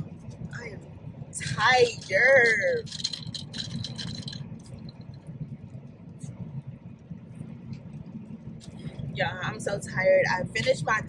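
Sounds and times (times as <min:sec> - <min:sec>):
car road and engine noise: 0:00.0 - 0:11.0
light clicks and rattles: 0:01.4 - 0:06.4.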